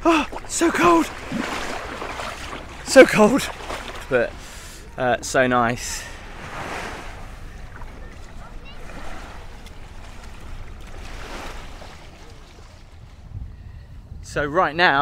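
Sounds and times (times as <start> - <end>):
small waves washing over sand: 0.0 - 13.4
wind rumble on microphone: 6.2 - 15.0.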